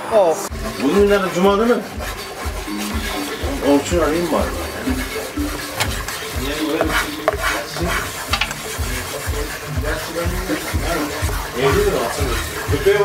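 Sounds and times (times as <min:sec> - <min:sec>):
background music with steady beat: 0:00.0 - 0:13.0
wooden spoon stirring in pan: 0:00.5 - 0:13.0
spoon scraping and clicking: 0:04.9 - 0:08.8.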